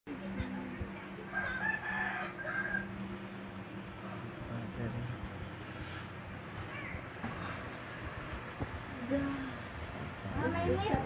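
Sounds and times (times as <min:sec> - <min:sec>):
steady low hum: 0:00.1 - 0:11.0
rooster crowing: 0:01.3 - 0:03.1
soft low thumps: 0:06.2 - 0:11.0.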